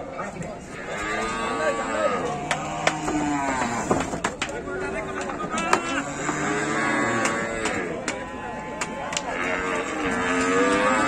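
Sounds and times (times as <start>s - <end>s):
cow mooing: 0.7s - 4.0s, 5.8s - 11.0s.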